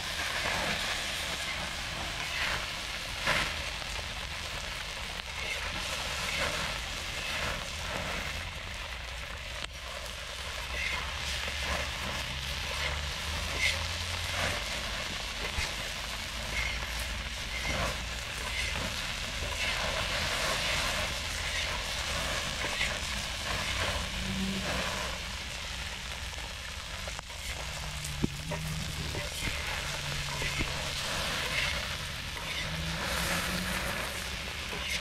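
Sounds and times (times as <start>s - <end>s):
crackles and pops: 0.0s - 35.0s
shrimp sizzling in a pan: 0.0s - 35.0s
wooden spatula stirring: 10.6s - 35.0s.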